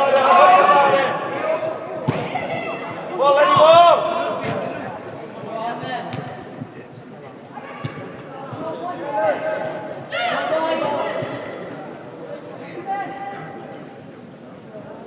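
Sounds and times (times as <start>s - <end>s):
players shouting: 0.0s - 4.9s, 7.7s - 11.8s.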